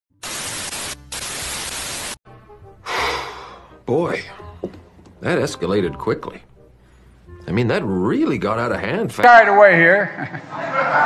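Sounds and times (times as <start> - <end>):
tv static hiss: 0.2 - 2.2.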